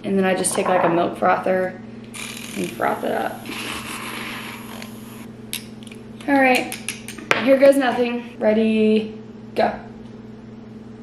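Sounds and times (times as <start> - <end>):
milk frother whirring: 2.1 - 5.3.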